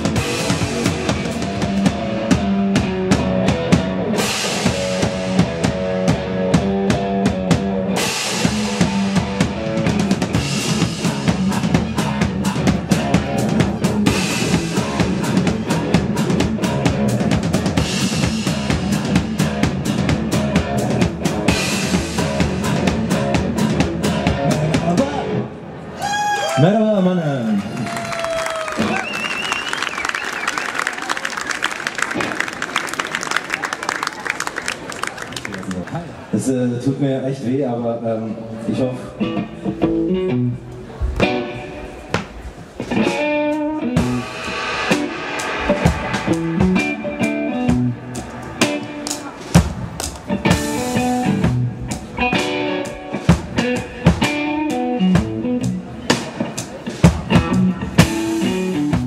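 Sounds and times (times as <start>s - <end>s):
live rock band playing: 0.0s - 25.4s, 39.2s - 59.0s
person singing: 10.7s - 17.1s
audience applauding: 27.4s - 36.2s.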